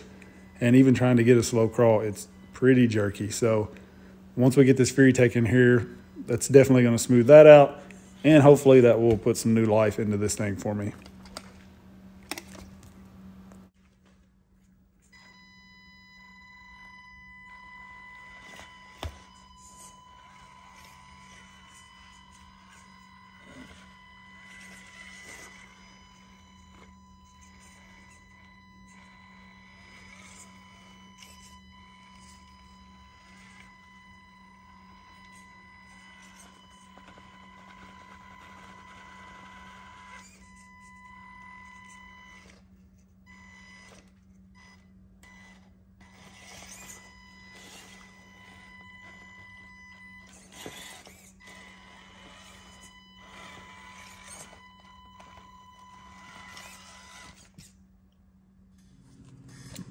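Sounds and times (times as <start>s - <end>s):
toy car motor whine: 15.0s - 57.9s.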